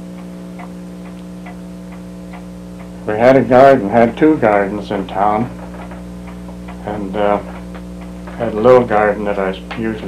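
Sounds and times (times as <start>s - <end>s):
pendulum clock ticking: 0.0s - 9.9s
electrical hum: 0.0s - 10.0s.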